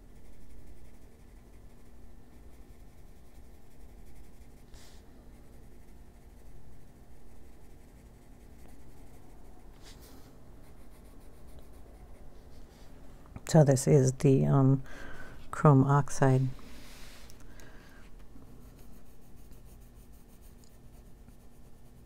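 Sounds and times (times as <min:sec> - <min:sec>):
pencil scratching on paper: 0:00.0 - 0:12.7, 0:18.5 - 0:22.0.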